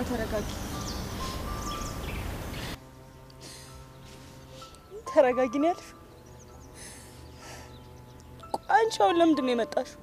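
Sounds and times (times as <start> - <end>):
faint music: 0.0 - 10.0
outdoor background noise: 0.0 - 10.0
bird chirps: 0.2 - 8.9.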